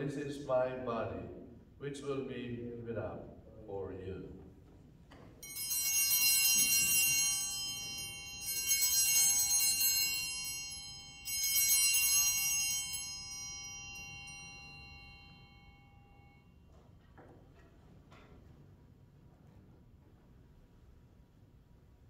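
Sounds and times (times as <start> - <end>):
altar bells ringing: 5.4 - 16.6.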